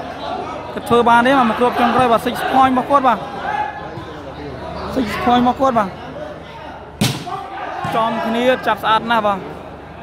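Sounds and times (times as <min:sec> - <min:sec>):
murmur of spectators: 0:00.0 - 0:10.0
volleyball smack: 0:07.0 - 0:07.4.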